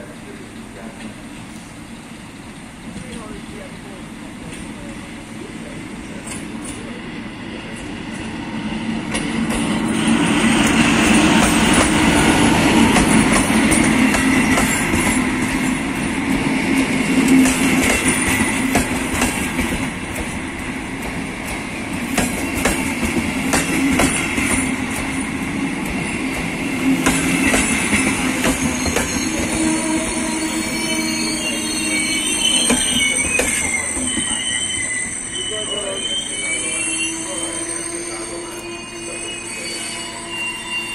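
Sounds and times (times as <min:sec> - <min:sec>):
train wheels rumbling on rail: 0:00.0 - 0:40.0
high brake squeals: 0:27.2 - 0:40.9.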